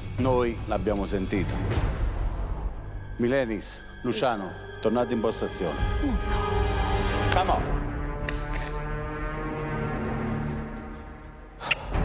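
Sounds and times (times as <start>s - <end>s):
deep drone music: 0.0s - 12.0s.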